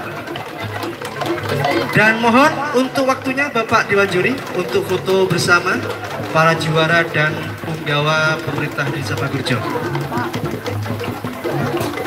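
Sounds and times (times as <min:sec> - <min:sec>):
background music: 0:00.0 - 0:12.0
people talking indistinctly: 0:00.0 - 0:12.0.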